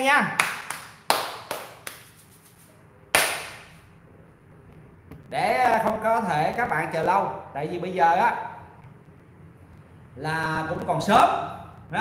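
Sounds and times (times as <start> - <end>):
sharp hand clap: 0.0 - 2.3, 3.1 - 3.8.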